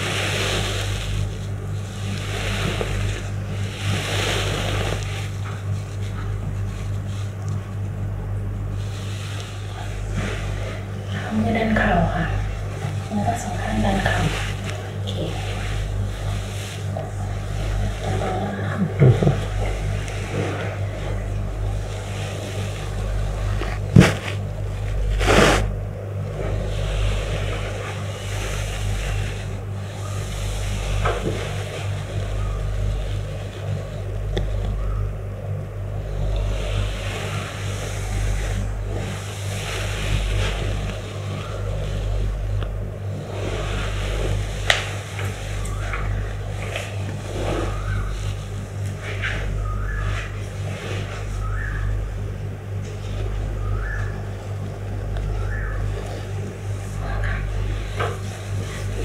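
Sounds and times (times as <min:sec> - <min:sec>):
steady low rumble: 0:00.0 - 0:59.0
cloth and sheets rustling: 0:08.6 - 0:25.8.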